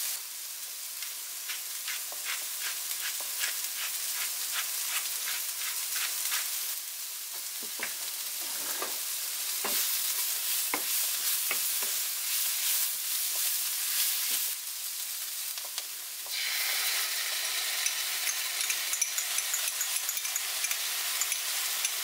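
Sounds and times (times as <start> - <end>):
food sizzling in a frying pan: 0.0 - 22.0
wooden spoon scraping: 8.4 - 9.0
spoon clicking against pan: 17.8 - 22.0.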